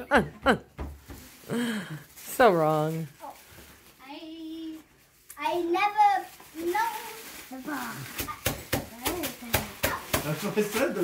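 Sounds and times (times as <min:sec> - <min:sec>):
tissue paper crinkling: 0:01.1 - 0:11.0.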